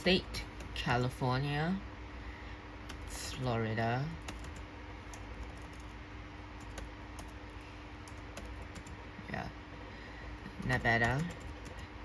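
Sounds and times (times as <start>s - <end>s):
computer keyboard typing: 2.9s - 3.2s, 4.1s - 6.0s, 6.6s - 9.0s, 10.4s - 11.9s.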